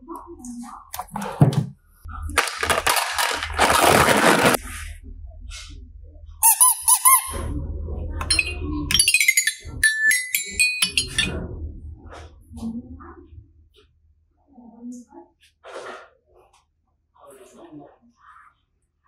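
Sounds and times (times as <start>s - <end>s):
noisy rattle: 2.4s - 4.6s
squeaky chirps: 6.4s - 7.4s, 8.2s - 11.2s
toy xylophone notes: 8.2s - 11.3s.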